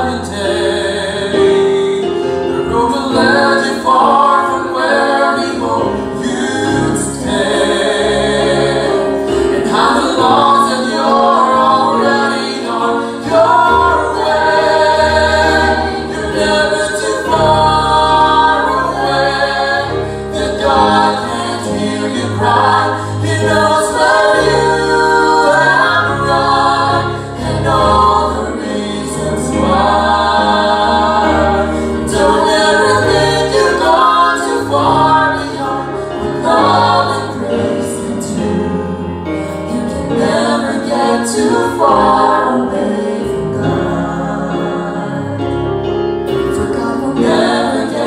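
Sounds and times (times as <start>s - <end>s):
vocal trio singing gospel: 0.0s - 48.0s.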